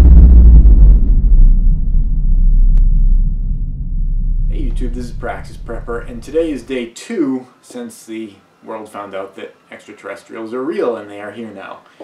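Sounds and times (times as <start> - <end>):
deep boom rumble: 0.0 - 6.9.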